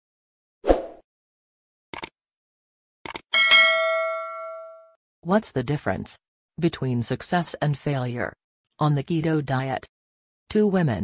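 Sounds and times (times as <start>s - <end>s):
notification bell ding: 3.4s - 4.9s.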